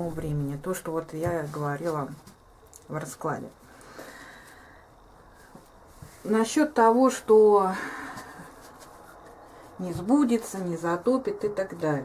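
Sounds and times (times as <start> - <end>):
woman speaking: 0.0 - 3.6, 6.2 - 8.4, 9.8 - 12.0.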